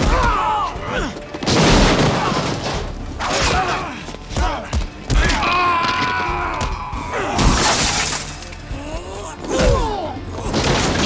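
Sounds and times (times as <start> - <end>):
film music: 0.0 - 11.0.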